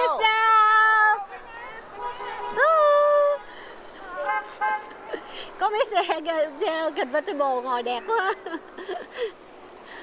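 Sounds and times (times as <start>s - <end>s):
car horns honking: 1.5s - 2.9s, 4.1s - 5.1s.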